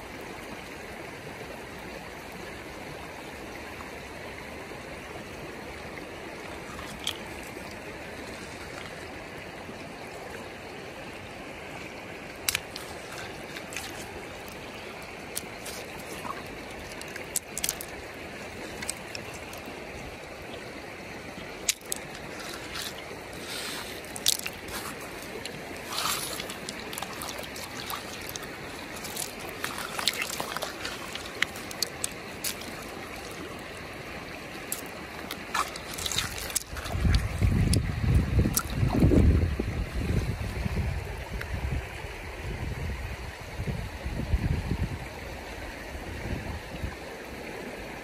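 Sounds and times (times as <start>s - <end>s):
river water over pebbles: 0.0s - 48.0s
splashes and stone clicks: 6.4s - 9.1s, 12.3s - 20.6s, 21.3s - 39.1s.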